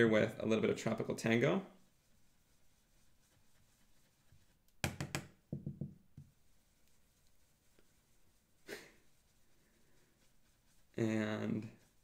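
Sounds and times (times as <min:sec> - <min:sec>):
light taps and knocks: 0:04.8 - 0:06.4.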